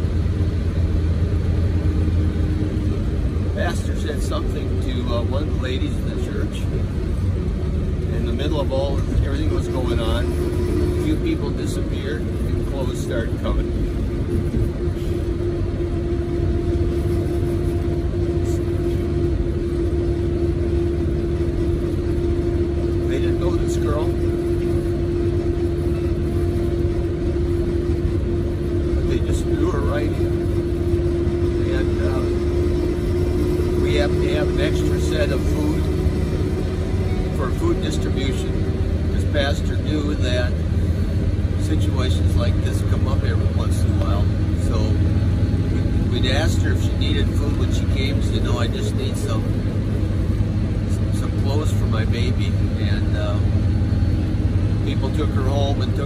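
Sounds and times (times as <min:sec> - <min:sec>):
minibus engine and road drone: 0:00.0 - 0:56.0
steady hum: 0:00.0 - 0:56.0.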